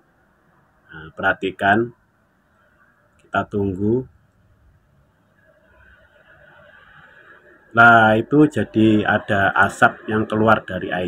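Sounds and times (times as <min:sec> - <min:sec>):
faint electrical hiss: 0:00.0 - 0:11.0.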